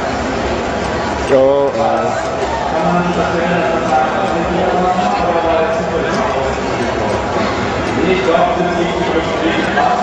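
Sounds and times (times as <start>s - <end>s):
background hubbub: 0.0s - 10.0s
voices talking: 1.3s - 10.0s.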